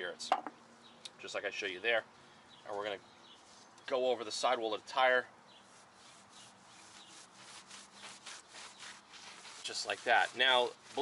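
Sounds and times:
towel rubbing on rubber: 0:05.6 - 0:11.0.

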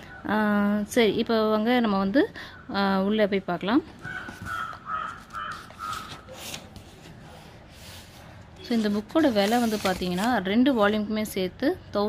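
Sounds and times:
bird calling: 0:04.0 - 0:06.4
book page turning: 0:04.0 - 0:08.1, 0:08.7 - 0:10.3.

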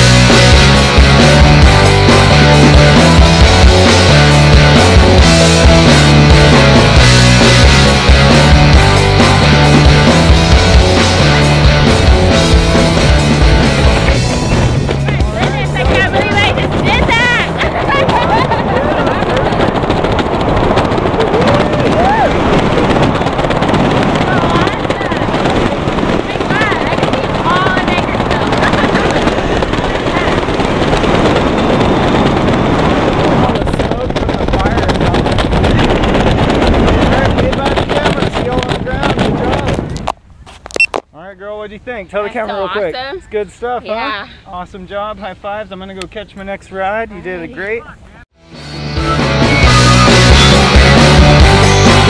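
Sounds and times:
wind rushing over microphone: 0:00.0 - 0:41.0
people whooping and laughing: 0:17.6 - 0:19.7, 0:21.3 - 0:22.6.

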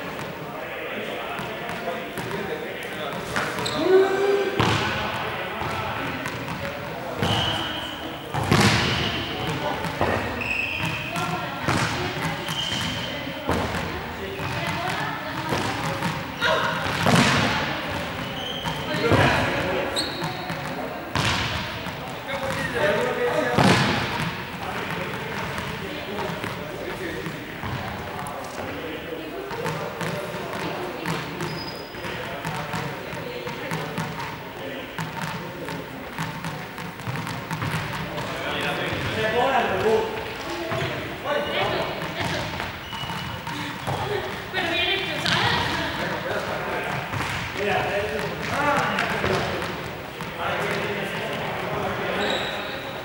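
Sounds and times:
people chattering: 0:00.0 - 0:53.0.

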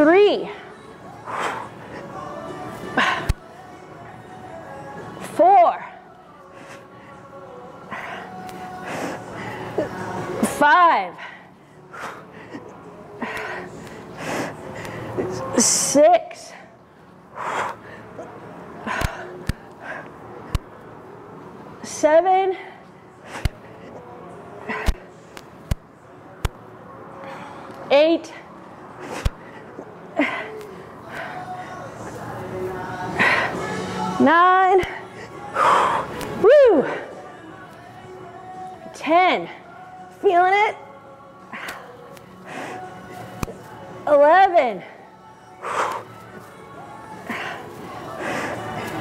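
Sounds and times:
faint background music: 0:00.0 - 0:49.0
person breathing heavily: 0:00.4 - 0:02.3, 0:07.8 - 0:10.0, 0:11.1 - 0:15.5, 0:16.5 - 0:20.6, 0:22.6 - 0:25.2, 0:27.2 - 0:32.2, 0:33.1 - 0:33.9, 0:34.8 - 0:37.4, 0:41.4 - 0:43.6, 0:44.8 - 0:49.0.

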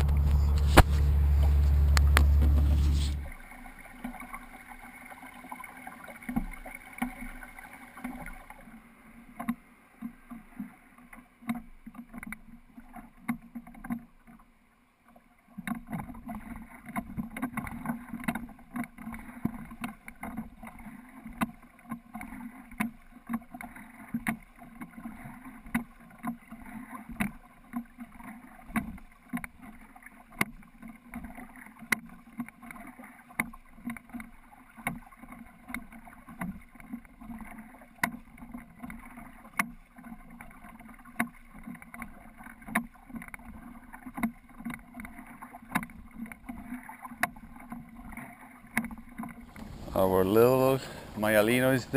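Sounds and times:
oars clunking in oarlocks: 0:00.0 - 0:51.9
water noise around hull: 0:00.0 - 0:51.9.

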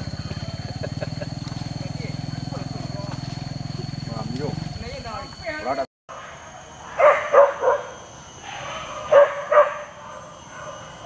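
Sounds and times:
dogs yelping and whining: 0:06.1 - 0:11.0.

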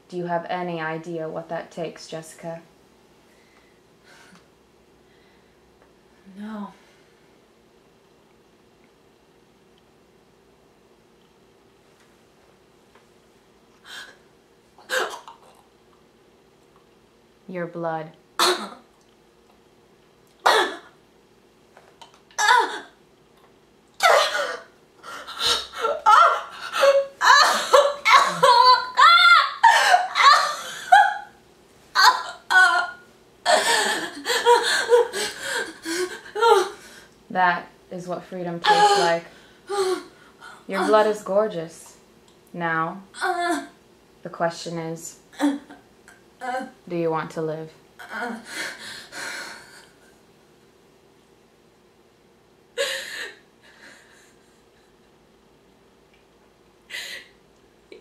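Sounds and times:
woman coughing harshly: 0:14.9 - 0:15.4, 0:18.4 - 0:18.8, 0:20.4 - 0:20.9, 0:24.0 - 0:24.7, 0:27.2 - 0:28.9.

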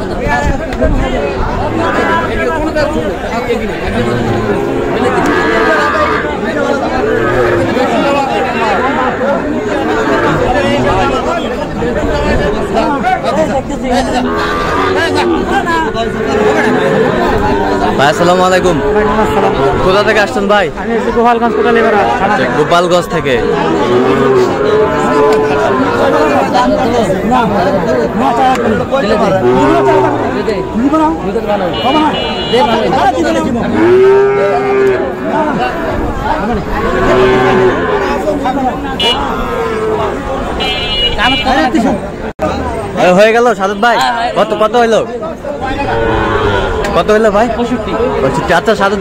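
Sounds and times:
men chattering: 0:00.0 - 0:49.0
cattle mooing: 0:01.6 - 0:02.6, 0:03.7 - 0:11.4, 0:13.9 - 0:30.8, 0:32.6 - 0:40.4, 0:45.6 - 0:49.0.

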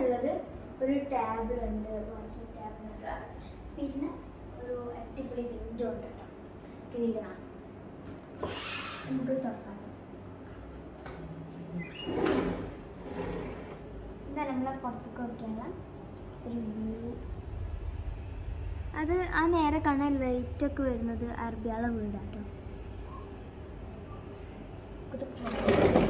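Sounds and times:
low steady hum: 0:00.0 - 0:08.4, 0:09.0 - 0:26.0
sliding window scraping open: 0:12.0 - 0:13.8, 0:25.4 - 0:26.0.

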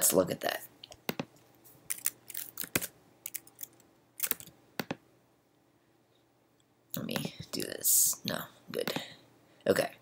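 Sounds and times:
keyboard and mouse clicks: 0:00.9 - 0:05.0.

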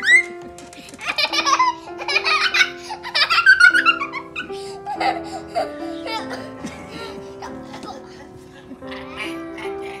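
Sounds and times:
background music with held notes: 0:00.0 - 0:10.0
young child laughing: 0:01.0 - 0:08.3.

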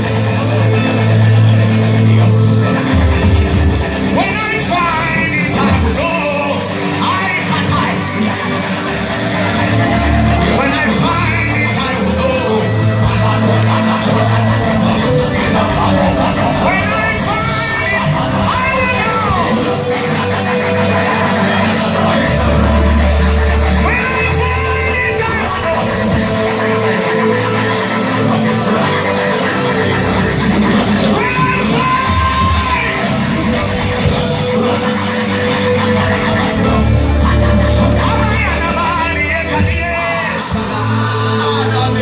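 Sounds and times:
drums: 0:00.0 - 0:42.0
electric guitar: 0:00.0 - 0:42.0
live gospel band music: 0:00.0 - 0:42.0
people singing into microphones: 0:00.0 - 0:42.0.

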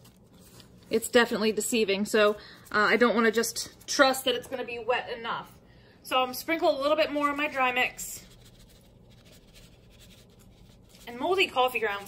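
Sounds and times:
dry mix rustling and scratching: 0:00.0 - 0:01.3, 0:07.2 - 0:12.0.

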